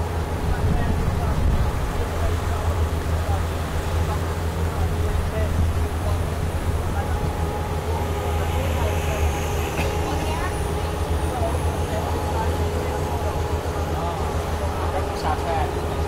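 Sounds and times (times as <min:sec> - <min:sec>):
speedboat engine drone: 0:00.0 - 0:16.0
water rushing past hull: 0:00.0 - 0:16.0.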